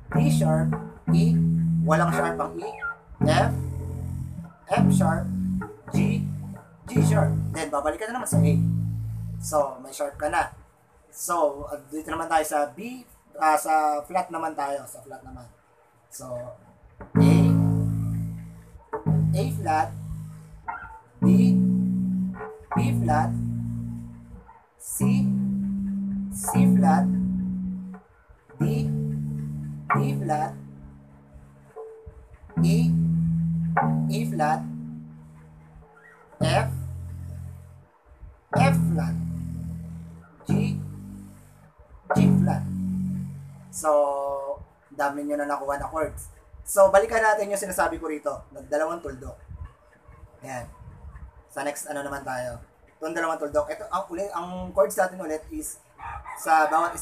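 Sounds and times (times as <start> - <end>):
electric bass note plucked: 0.0 - 9.7, 17.0 - 31.9, 32.5 - 37.8, 38.5 - 44.1.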